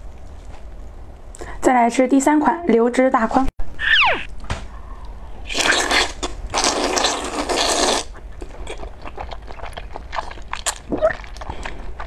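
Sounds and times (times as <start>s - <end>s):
noodles being slurped: 5.5s - 12.0s
wet chewing: 5.5s - 12.0s.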